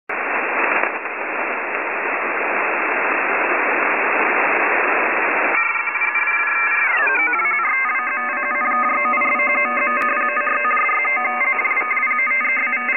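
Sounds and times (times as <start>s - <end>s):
telephone line static hiss: 0.1s - 12.9s
electronic tones sliding in pitch: 5.6s - 12.9s.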